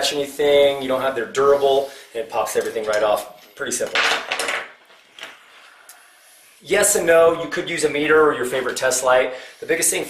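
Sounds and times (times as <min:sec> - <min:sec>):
multimeter leads rattling: 0:02.5 - 0:05.4.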